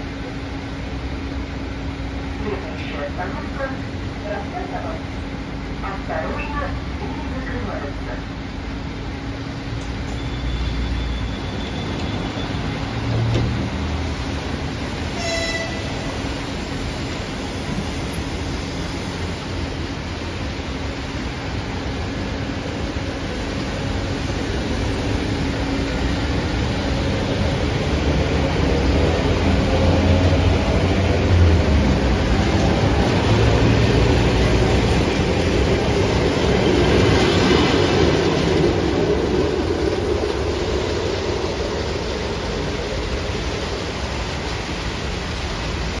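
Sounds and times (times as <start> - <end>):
train wheels running on rails: 0.0 - 46.0.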